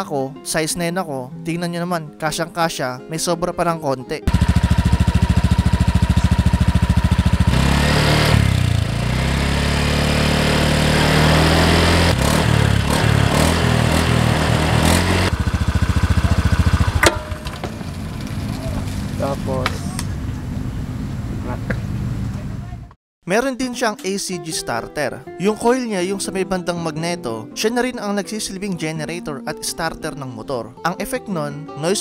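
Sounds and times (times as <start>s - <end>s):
scooter engine idling and revving: 4.3s - 22.8s.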